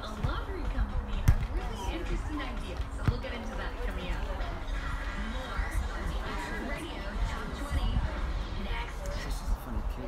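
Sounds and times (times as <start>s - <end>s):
background talk: 0.0s - 10.0s.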